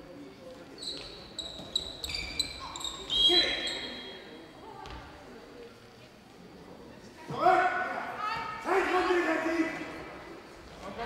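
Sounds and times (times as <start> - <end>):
voices in a hall: 0.0 - 11.0
shoes squeaking: 0.7 - 4.3.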